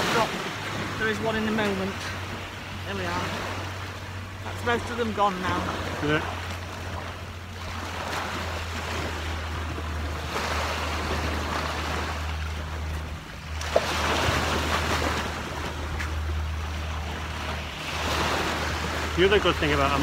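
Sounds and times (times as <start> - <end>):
sea surf washing onto beach: 0.0 - 20.0.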